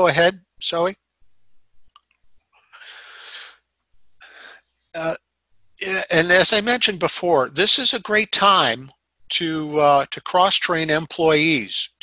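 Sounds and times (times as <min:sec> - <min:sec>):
breaths into microphone: 0:02.7 - 0:03.6, 0:04.2 - 0:04.9.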